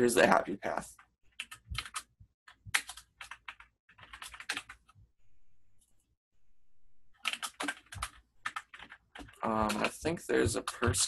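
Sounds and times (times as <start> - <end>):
typing on a keyboard: 1.0 - 5.0, 7.2 - 11.0.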